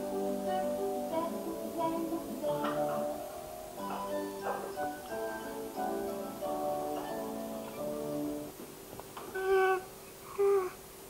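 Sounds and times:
infant cooing: 0:09.3 - 0:10.8.

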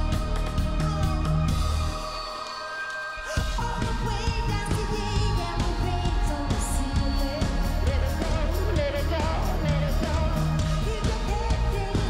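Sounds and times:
live pop band playing: 0:00.0 - 0:12.0
woman singing: 0:00.0 - 0:12.0.

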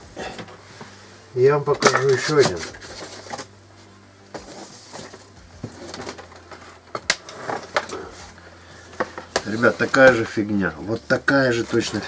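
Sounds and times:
laptops being handled: 0:01.7 - 0:03.6, 0:04.3 - 0:12.0.

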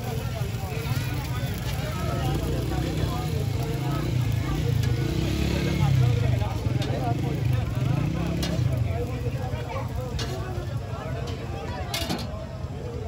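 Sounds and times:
background chatter: 0:00.0 - 0:13.0
vehicle engines rumbling: 0:00.0 - 0:13.0
spatula clicking on griddle: 0:08.2 - 0:08.8, 0:10.0 - 0:12.3.

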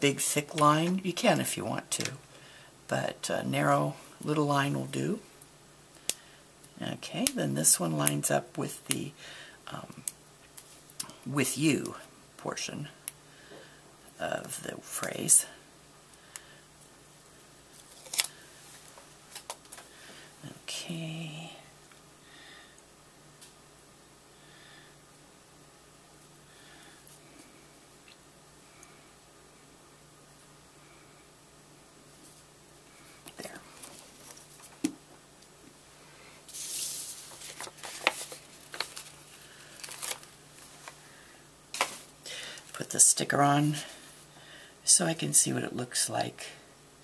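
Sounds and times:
paper rustle: 0:36.5 - 0:41.0.

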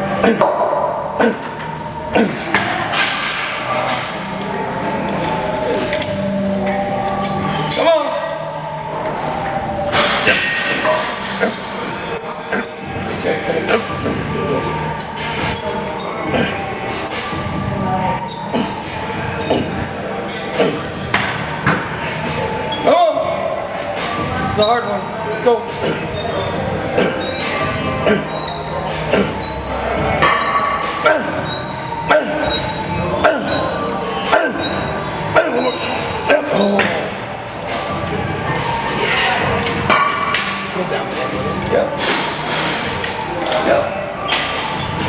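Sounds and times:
background music: 0:00.0 - 0:45.0
voices: 0:00.0 - 0:45.0.

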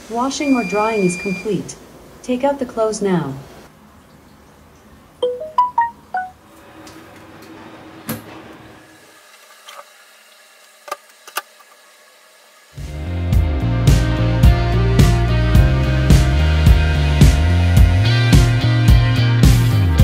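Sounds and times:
phone notification chime: 0:05.2 - 0:06.4
music with drum beat: 0:13.3 - 0:20.0.

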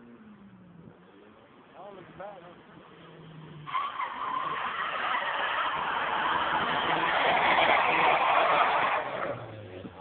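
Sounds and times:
tyres screeching: 0:03.2 - 0:09.6.

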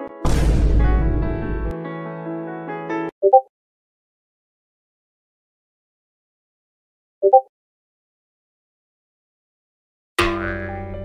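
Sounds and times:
low rumble: 0:00.3 - 0:01.7.

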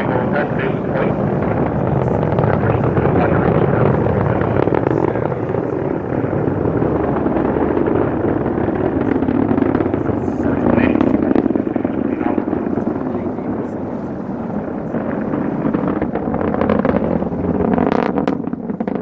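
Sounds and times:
rocket engine crackling rumble: 0:00.0 - 0:19.0.

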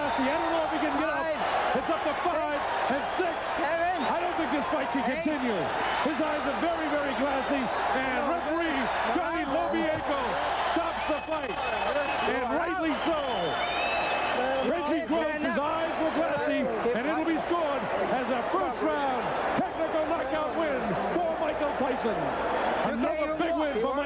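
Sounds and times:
crowd shouting: 0:00.0 - 0:24.0.

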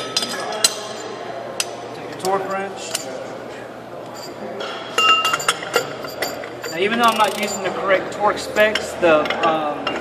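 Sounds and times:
metal tools clinking: 0:05.0 - 0:07.8.

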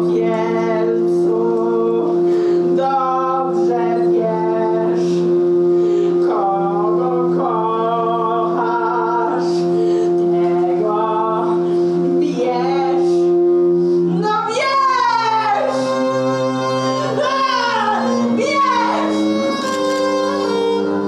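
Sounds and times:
violin and cello long notes: 0:00.0 - 0:21.0.

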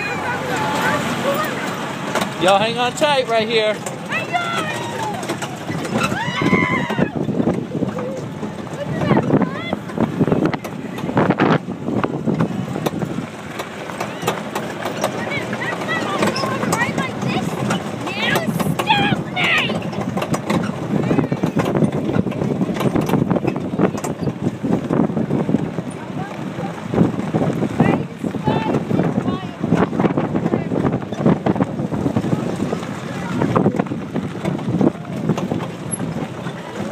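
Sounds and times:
children squealing and laughing: 0:00.0 - 0:01.8, 0:04.1 - 0:08.3, 0:18.1 - 0:19.9
tractor train rumbling and rattling: 0:00.0 - 0:36.9.

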